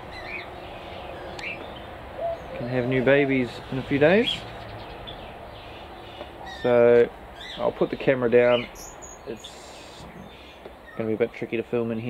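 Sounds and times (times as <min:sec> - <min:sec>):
faint steady background noise: 0:00.0 - 0:12.0
small birds chirping: 0:00.0 - 0:12.0.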